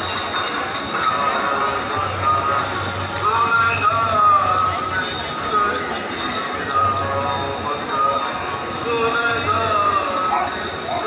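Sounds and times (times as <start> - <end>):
many voices talking: 0.0 - 11.0
traffic: 0.0 - 11.0.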